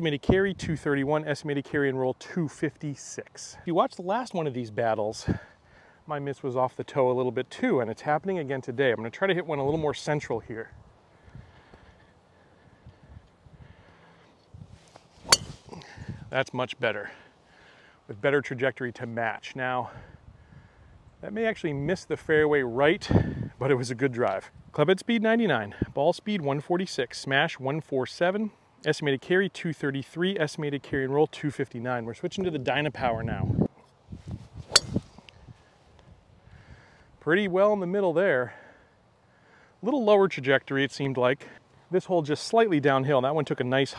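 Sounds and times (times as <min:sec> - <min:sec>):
golf driver striking ball: 0:15.2 - 0:15.8, 0:34.7 - 0:35.2.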